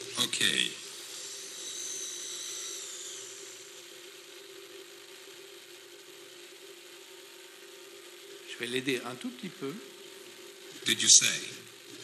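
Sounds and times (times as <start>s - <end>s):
servo motors whining: 0.0s - 4.0s.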